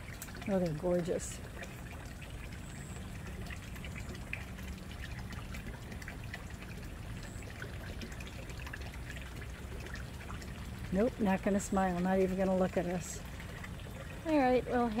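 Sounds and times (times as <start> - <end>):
low constant hum: 0.0 - 15.0
water trickling: 0.0 - 15.0.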